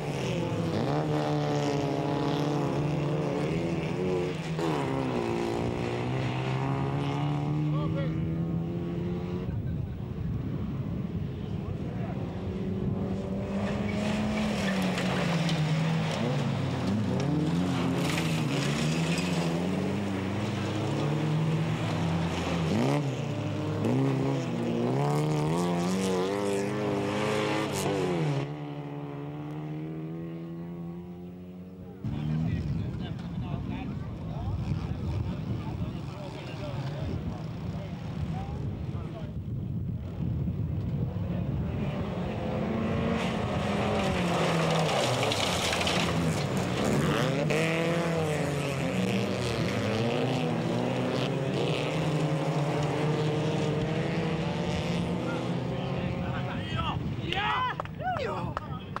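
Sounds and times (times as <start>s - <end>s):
race car engines accelerating: 0.0s - 59.0s.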